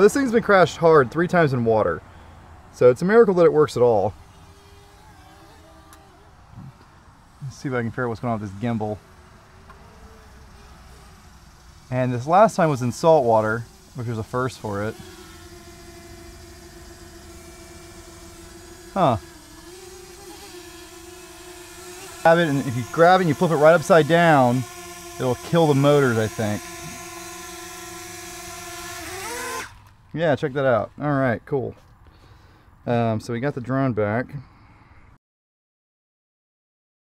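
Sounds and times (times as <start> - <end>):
drone hovering hum: 0.0 - 29.9.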